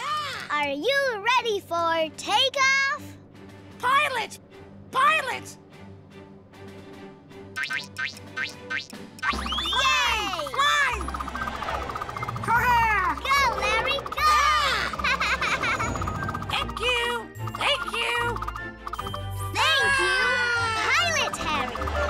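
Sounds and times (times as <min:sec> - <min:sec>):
playful children's music: 0:00.0 - 0:22.0
cartoon whistle-like swoops: 0:09.2 - 0:11.0.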